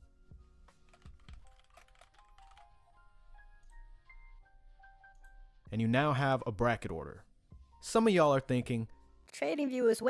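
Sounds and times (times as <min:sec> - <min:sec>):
quiet background music: 0:00.0 - 0:10.0
computer keyboard typing: 0:00.7 - 0:03.9.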